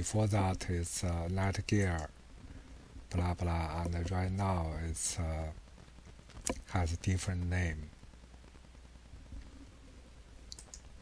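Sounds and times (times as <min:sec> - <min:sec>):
low steady room hum: 0:00.0 - 0:11.0
computer mouse clicks: 0:10.5 - 0:10.9.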